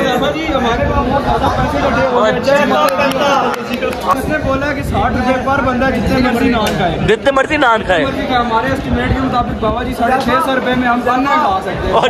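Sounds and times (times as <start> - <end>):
men's voices chattering: 0.0 - 12.0.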